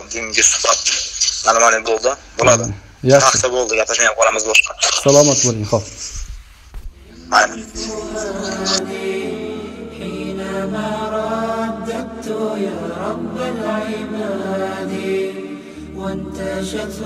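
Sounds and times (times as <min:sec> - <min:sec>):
a cappella chanting: 0:06.9 - 0:17.0
low steady vocal drone: 0:07.0 - 0:17.0.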